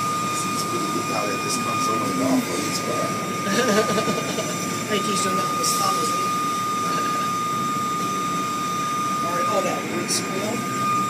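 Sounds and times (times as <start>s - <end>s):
car wash machinery rushing: 0.0s - 11.0s
constant high whine: 0.0s - 11.0s.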